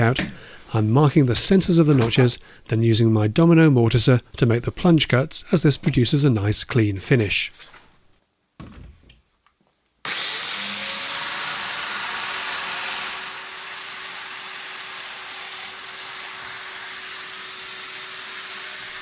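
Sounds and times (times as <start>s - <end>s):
dust extractor running: 10.1s - 19.0s
power tool motor whine: 10.1s - 19.0s.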